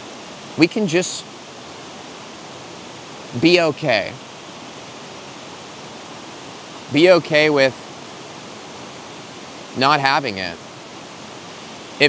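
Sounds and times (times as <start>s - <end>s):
waterfall rushing: 0.0s - 12.0s
man speaking: 0.6s - 1.2s, 3.4s - 4.2s, 6.9s - 7.8s, 9.8s - 10.6s.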